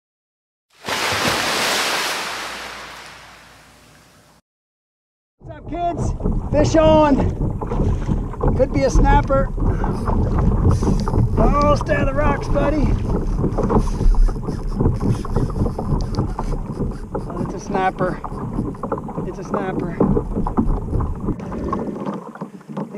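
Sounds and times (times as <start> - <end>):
water lapping against kayak hull: 0.8 - 3.9, 5.7 - 22.9
wind buffeting microphone: 5.5 - 22.2.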